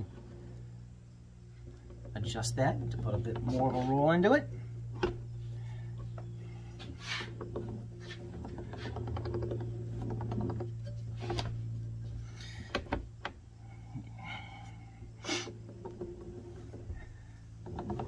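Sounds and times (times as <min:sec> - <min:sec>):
steady low hum: 0:00.0 - 0:18.0.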